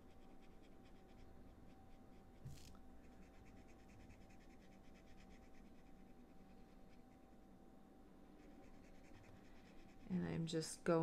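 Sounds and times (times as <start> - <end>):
marker scratching on card: 0.0 - 7.1, 8.4 - 10.0
faint steady hum: 0.0 - 11.0.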